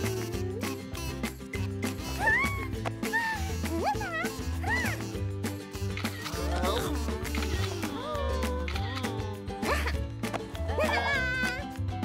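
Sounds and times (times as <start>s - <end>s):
high squeaky cartoon calls: 0.0s - 5.2s
upbeat cartoon music: 0.0s - 12.0s.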